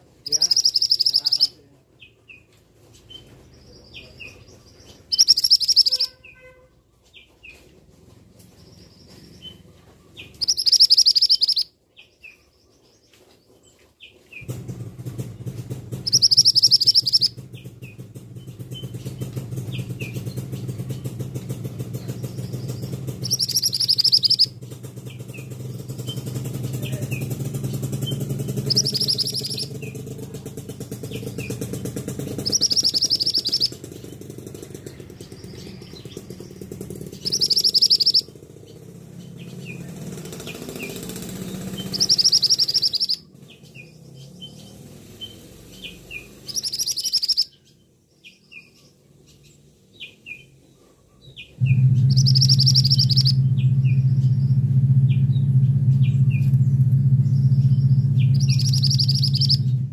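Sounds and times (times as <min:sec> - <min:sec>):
bird giving shrill calls: 0:00.2 - 0:01.6, 0:05.1 - 0:06.6, 0:10.3 - 0:11.7, 0:16.0 - 0:17.4, 0:22.3 - 0:24.6, 0:28.0 - 0:30.0, 0:32.3 - 0:34.2, 0:35.3 - 0:38.3, 0:40.5 - 0:43.3, 0:45.2 - 0:47.6, 0:52.0 - 0:53.4, 0:58.2 - 0:59.8
low steady drone: 0:51.6 - 0:59.0.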